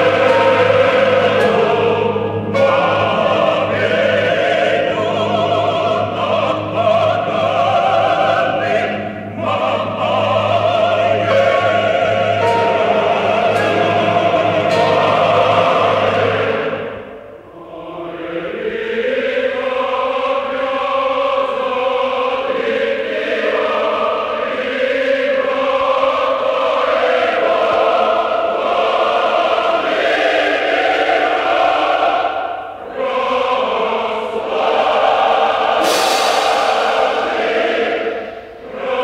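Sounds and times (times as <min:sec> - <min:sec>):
large choir singing: 0:00.0 - 0:39.0.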